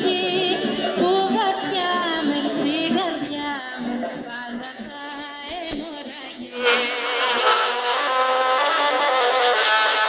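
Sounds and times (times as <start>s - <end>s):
am radio music through small speaker: 0.0s - 8.3s.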